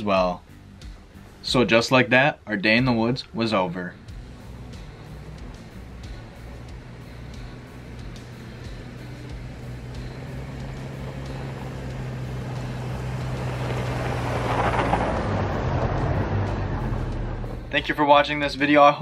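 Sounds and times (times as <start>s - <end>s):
car engine approaching: 0.0s - 18.8s
tyres on packed snow: 4.5s - 17.4s.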